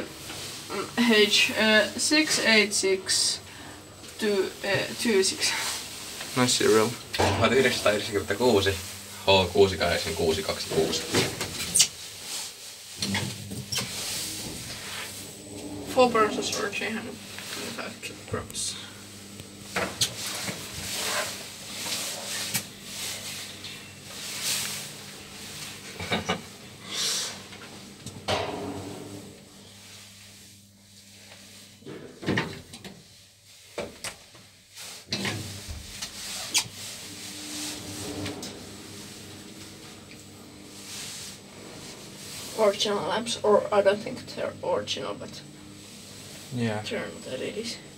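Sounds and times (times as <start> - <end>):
elevator car humming: 13.0 - 18.6, 36.7 - 42.8.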